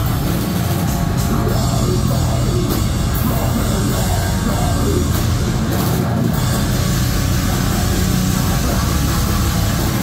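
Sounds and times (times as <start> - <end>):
heavy metal band playing live: 0.0 - 10.0.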